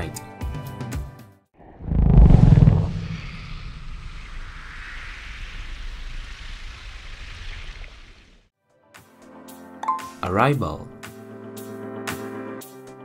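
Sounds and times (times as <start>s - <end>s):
deep boom: 1.6s - 4.6s.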